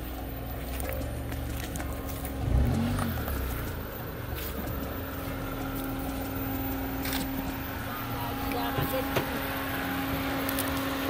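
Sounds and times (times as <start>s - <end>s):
car engine running: 0.0s - 11.0s.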